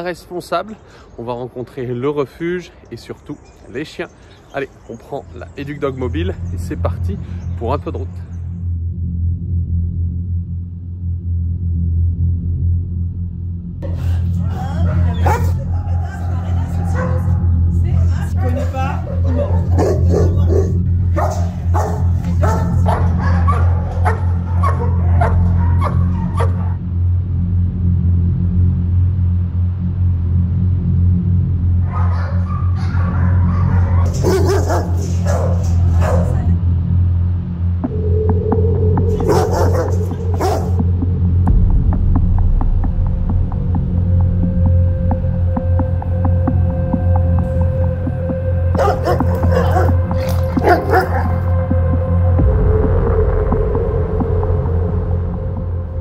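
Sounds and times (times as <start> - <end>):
low droning music: 0.0 - 56.0
dog barking: 15.0 - 17.5, 19.3 - 26.8, 31.8 - 36.5, 39.1 - 40.8, 48.7 - 51.5.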